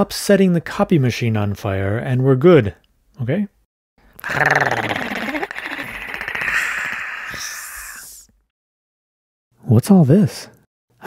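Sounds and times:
raspy demonic growl: 0:04.2 - 0:08.3.

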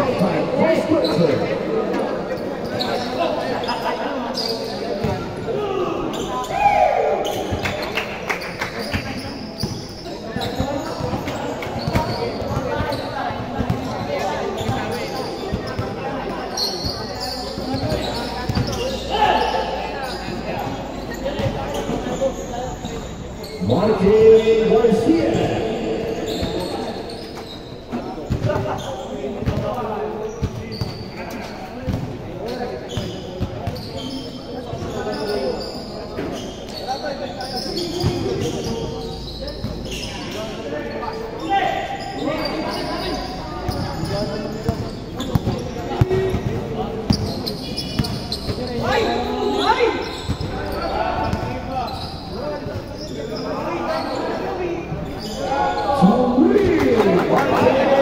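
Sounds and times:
players shouting: 0:23.6 - 0:27.2, 0:55.3 - 0:58.0.

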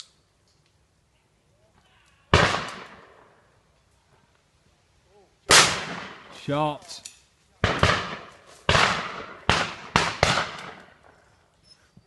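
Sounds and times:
shotgun shots echoing: 0:02.3 - 0:03.3, 0:05.5 - 0:06.5, 0:07.6 - 0:11.1.

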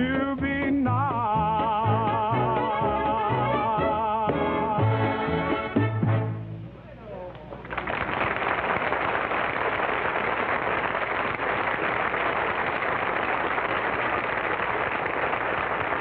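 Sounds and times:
audience applauding: 0:07.6 - 0:16.0.

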